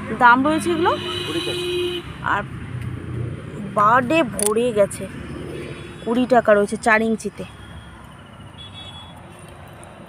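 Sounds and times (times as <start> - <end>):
voice: 0.0 - 2.5, 3.6 - 5.1, 6.0 - 7.6
road traffic hum: 0.0 - 10.0
vehicle horn: 0.5 - 2.2, 7.7 - 9.2.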